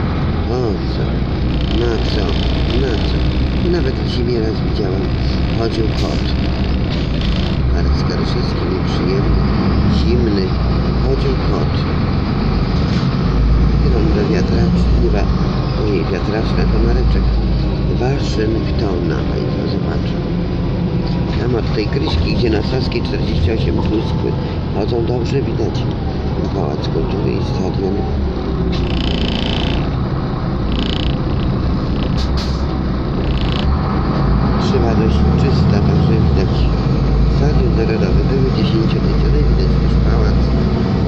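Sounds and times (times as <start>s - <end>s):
bus engine and road rumble: 0.0s - 41.0s.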